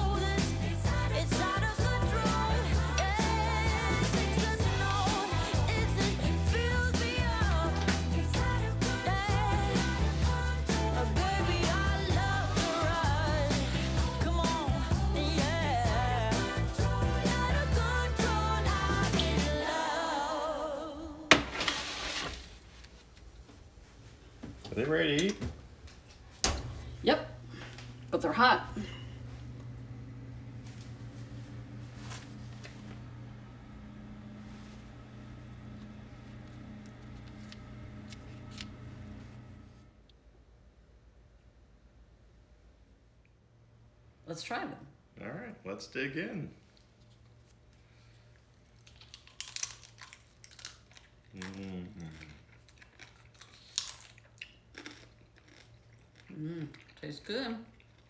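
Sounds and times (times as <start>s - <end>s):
faint steady hum: 0.0s - 58.0s
crisp food crunching: 48.6s - 58.0s.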